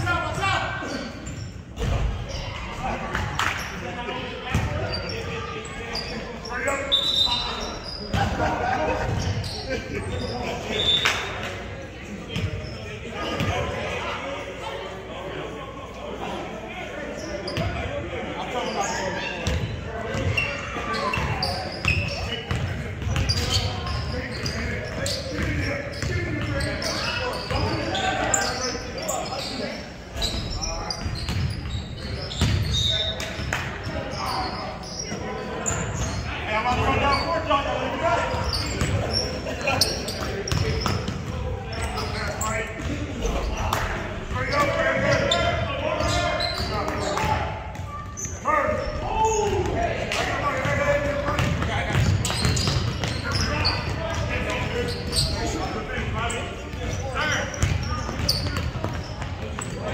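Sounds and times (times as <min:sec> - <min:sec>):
players' voices and shouts: 0:00.0 - 0:59.9.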